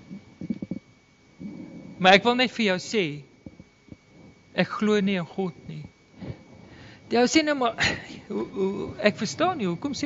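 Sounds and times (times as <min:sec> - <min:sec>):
low voiced hum: 0:00.0 - 0:10.0
mouth and breath noises: 0:01.4 - 0:02.0, 0:06.2 - 0:07.1.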